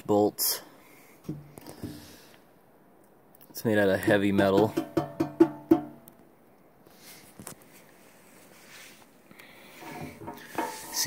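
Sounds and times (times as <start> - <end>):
hand knocking on sheet metal: 4.6 - 6.0
quiet handling: 7.2 - 11.0.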